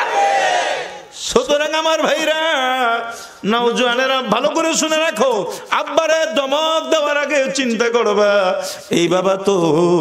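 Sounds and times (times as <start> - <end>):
man chanting a sermon: 1.2 - 10.0.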